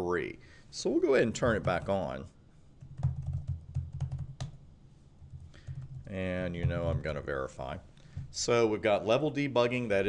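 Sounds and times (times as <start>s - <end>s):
typing on computer keyboard: 2.8s - 4.6s.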